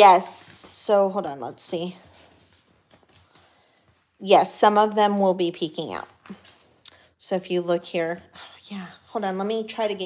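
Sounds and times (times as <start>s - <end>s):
paper envelopes rustling: 1.8s - 4.1s, 6.0s - 6.8s.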